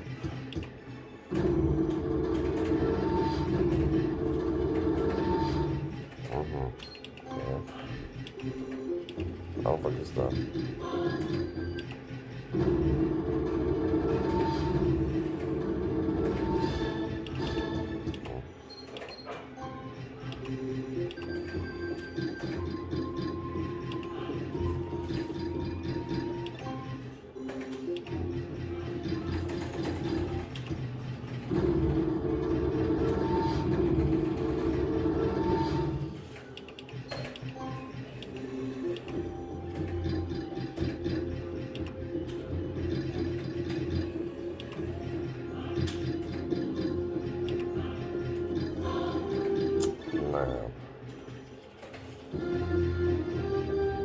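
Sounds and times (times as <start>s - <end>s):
slot machine electronic music: 0.0s - 54.0s.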